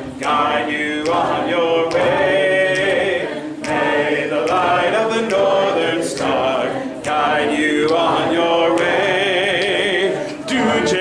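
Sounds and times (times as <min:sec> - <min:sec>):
person singing unaccompanied: 0:00.0 - 0:11.0.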